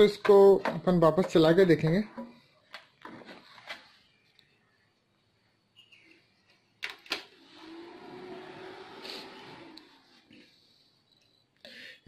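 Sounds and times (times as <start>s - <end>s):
computer fans humming: 7.2s - 10.2s.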